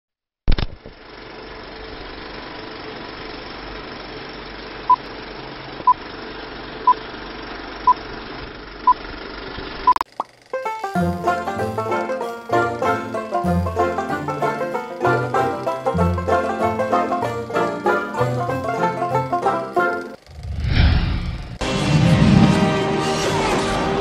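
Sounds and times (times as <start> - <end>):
banjo-led music: 10.5 - 20.2.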